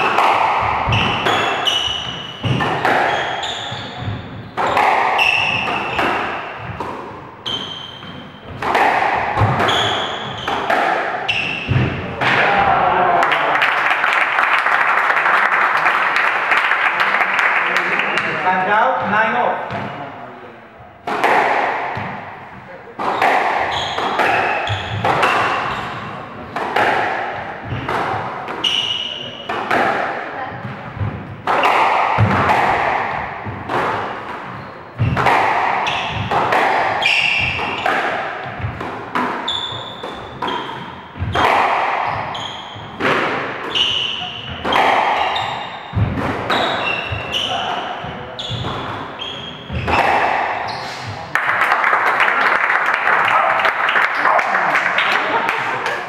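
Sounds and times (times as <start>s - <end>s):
squash ball hitting rackets and walls: 0.0s - 12.9s, 19.0s - 20.0s, 21.0s - 52.4s
shoe squeaks: 0.7s - 6.8s, 7.4s - 8.6s, 9.4s - 11.8s, 23.2s - 26.1s, 28.6s - 29.5s, 34.4s - 36.3s, 37.0s - 38.0s, 39.4s - 41.4s, 42.0s - 43.0s, 43.6s - 51.3s.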